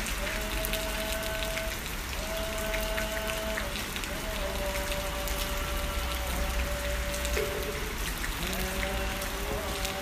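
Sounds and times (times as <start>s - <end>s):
raindrop ticks: 0.0s - 10.0s
steady rain: 0.0s - 10.0s.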